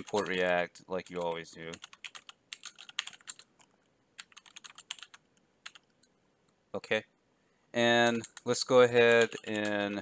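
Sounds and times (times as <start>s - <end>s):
typing on computer keyboard: 0.0s - 0.4s, 1.0s - 6.0s, 8.0s - 10.0s.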